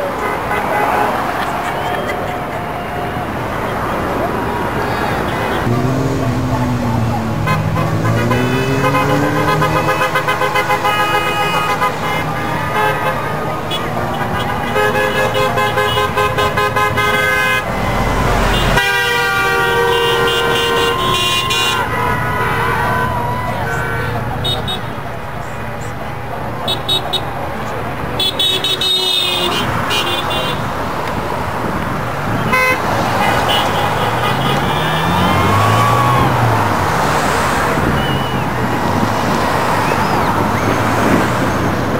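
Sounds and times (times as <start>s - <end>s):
car horns honking: 0.0s - 2.6s, 5.0s - 25.0s, 26.6s - 27.3s, 28.2s - 30.8s, 32.3s - 36.4s
passing traffic: 0.0s - 41.9s.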